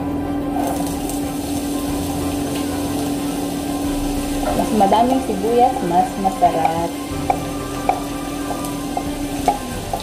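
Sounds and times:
onions sizzling in hot oil: 0.5s - 10.0s.

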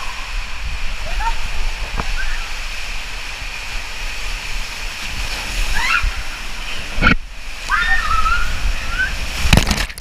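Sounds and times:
water rushing down slide tube: 0.0s - 10.0s.

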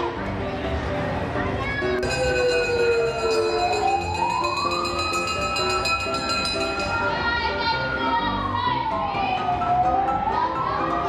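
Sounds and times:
fire truck siren wailing: 2.0s - 11.0s.

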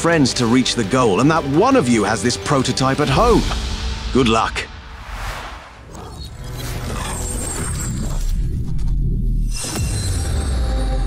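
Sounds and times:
falling sweep: 4.8s - 6.9s.

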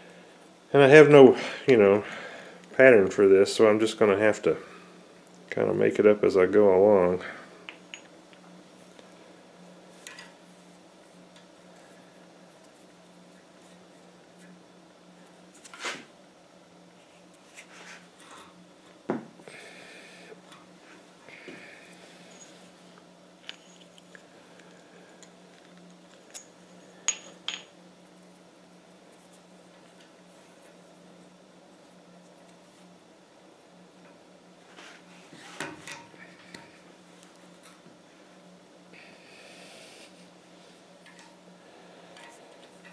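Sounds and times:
steady low hum: 0.0s - 42.9s.

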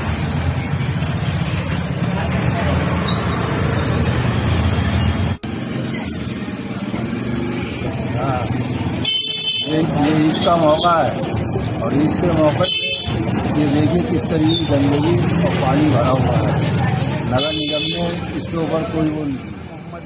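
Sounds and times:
scooter engines passing: 0.0s - 20.0s
voices chattering: 0.0s - 20.0s.

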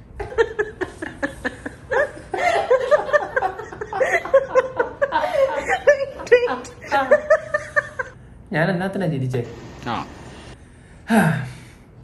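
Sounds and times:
people laughing hard: 0.2s - 8.2s.

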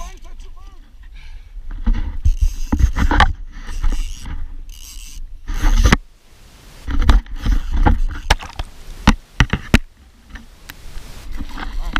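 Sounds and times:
camera scraping and clattering: 1.6s - 6.0s, 6.8s - 11.9s.

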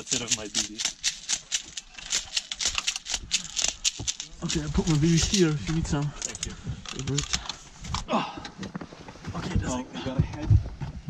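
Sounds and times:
plastic pellets rattling in container: 0.0s - 7.6s.

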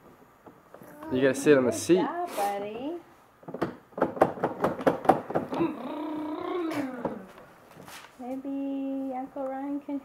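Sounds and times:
drawn-out ooh vocal sound: 5.5s - 7.4s.

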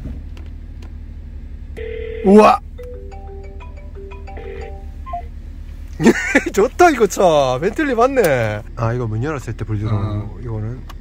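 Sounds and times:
low steady hum: 0.0s - 11.0s
simple electronic tune: 2.8s - 5.4s.

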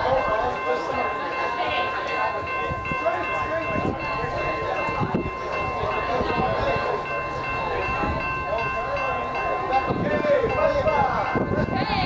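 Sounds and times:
faint voices: 0.0s - 12.0s
low train rumble: 0.0s - 12.0s
steady chord of high tones: 0.0s - 12.0s.

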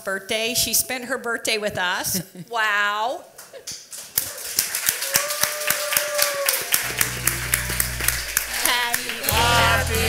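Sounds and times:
audience clapping in rhythm: 4.0s - 10.0s.

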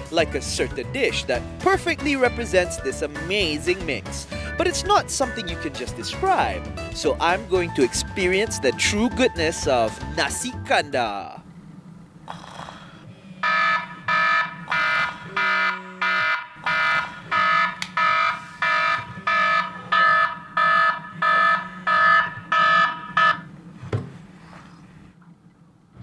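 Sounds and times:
phone alarm beeping: 13.4s - 23.4s.

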